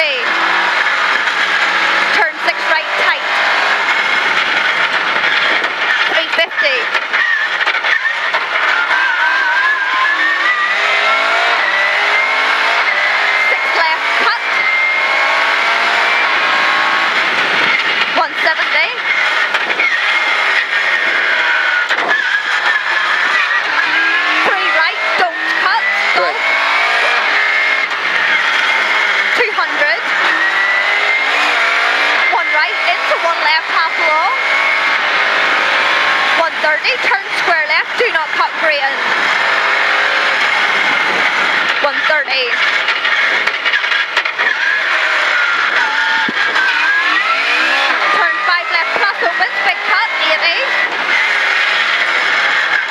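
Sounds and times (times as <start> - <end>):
rally car engine revving: 0.0 - 52.9.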